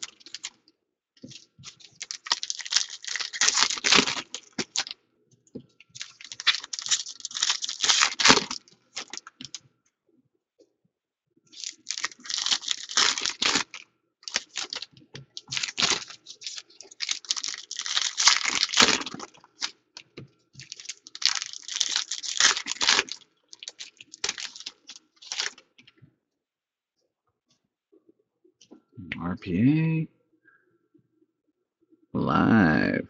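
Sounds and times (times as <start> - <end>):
foil wrappers tearing and crinkling: 0.0 - 0.5, 1.3 - 4.9, 5.9 - 9.6, 11.5 - 19.8, 20.6 - 25.7.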